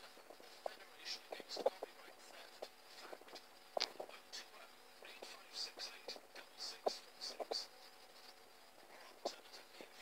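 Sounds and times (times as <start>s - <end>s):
faint whispering: 0.0s - 10.0s.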